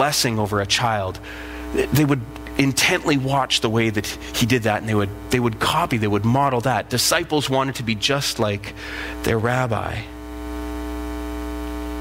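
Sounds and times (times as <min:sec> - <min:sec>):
buzzy mains hum: 0:00.0 - 0:12.0.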